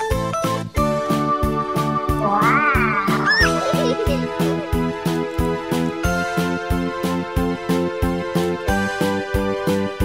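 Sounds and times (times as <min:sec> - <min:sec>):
upbeat background music: 0:00.0 - 0:10.0.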